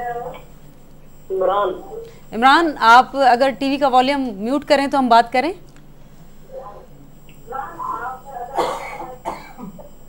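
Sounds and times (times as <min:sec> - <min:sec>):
person coughing: 0:08.6 - 0:09.9.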